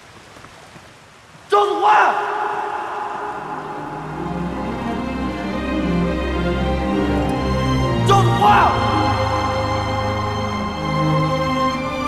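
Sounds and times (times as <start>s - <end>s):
man shouting: 1.5s - 4.0s, 8.0s - 9.1s
held chords of background music: 3.4s - 12.0s.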